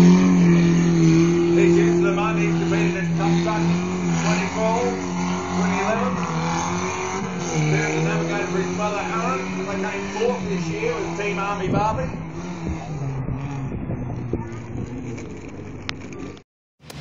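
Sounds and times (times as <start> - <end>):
off-road vehicle engine revving: 0.0 - 17.0.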